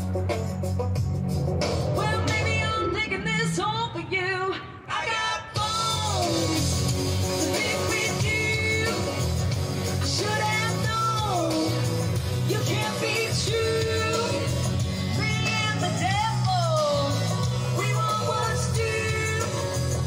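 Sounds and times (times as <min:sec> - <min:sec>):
rock band playing: 0:00.0 - 0:04.1, 0:05.6 - 0:20.0
woman singing rock song: 0:02.0 - 0:06.8, 0:07.4 - 0:20.0.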